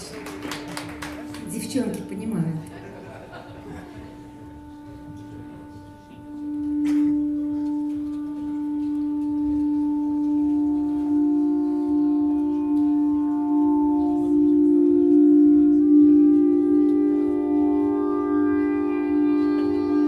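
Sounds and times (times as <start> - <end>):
sustained instrumental notes: 0.0 - 20.0.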